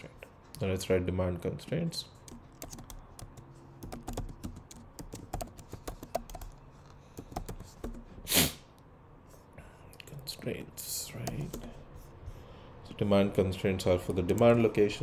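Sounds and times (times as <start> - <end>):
computer keyboard typing: 2.2 - 8.1, 11.2 - 11.8
short loud hiss: 8.3 - 8.7.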